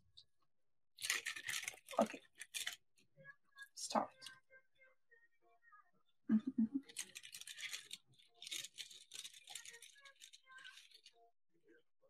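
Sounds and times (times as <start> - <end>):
small metal items rattling: 1.0 - 2.8, 6.8 - 11.1
packaging crinkling: 6.9 - 11.1.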